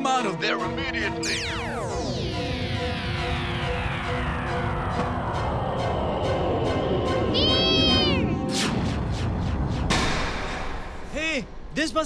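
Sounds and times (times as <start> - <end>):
cartoon soundtrack music: 0.0 - 10.2
high cry-like tone: 7.3 - 8.4.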